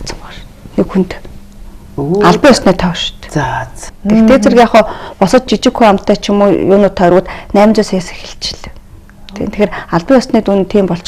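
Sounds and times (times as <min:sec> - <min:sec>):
person talking: 0:02.0 - 0:04.9.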